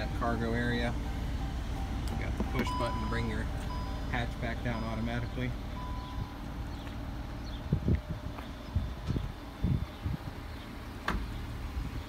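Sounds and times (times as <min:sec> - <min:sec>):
wind and handling on microphone: 0:07.5 - 0:10.5.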